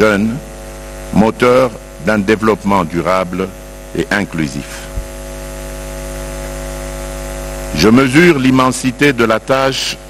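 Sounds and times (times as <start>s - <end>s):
electrical mains hum: 0.0s - 10.0s
person giving a speech: 1.1s - 5.0s.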